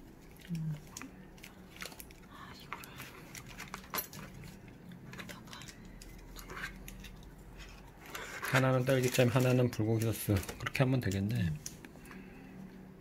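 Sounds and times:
food handling clicks and scraping: 0.2s - 12.3s.

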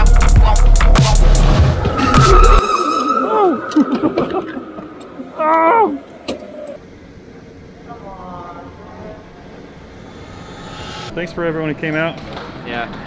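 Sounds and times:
person shouting: 5.3s - 6.0s.

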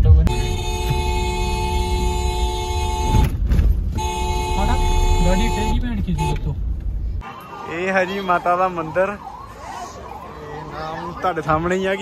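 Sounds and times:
car driving rumble: 0.0s - 7.3s
vehicle horn blasts: 0.3s - 3.3s, 3.9s - 6.5s, 7.2s - 8.4s.

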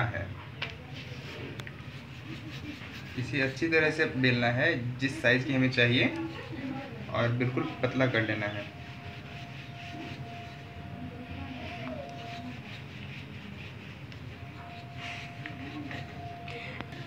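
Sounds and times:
rolling pin rolling dough: 0.8s - 17.0s.

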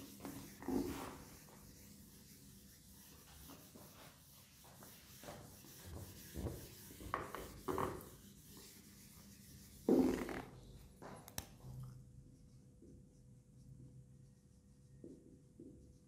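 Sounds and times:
duster rubbing a whiteboard: 0.0s - 10.7s.

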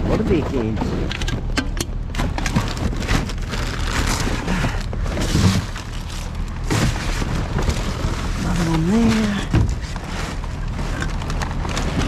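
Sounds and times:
rubbish crackling and rustling: 0.0s - 12.0s
steady low hum: 0.0s - 12.0s.

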